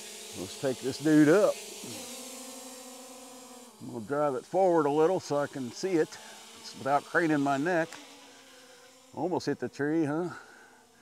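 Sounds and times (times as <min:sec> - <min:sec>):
drone propellers humming: 0:00.0 - 0:11.0.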